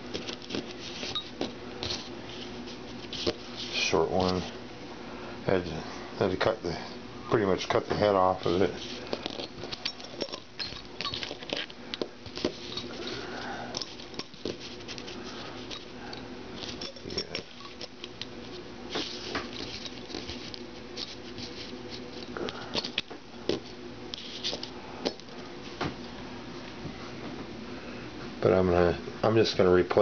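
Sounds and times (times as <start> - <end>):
faint steady hum: 0.0 - 30.0.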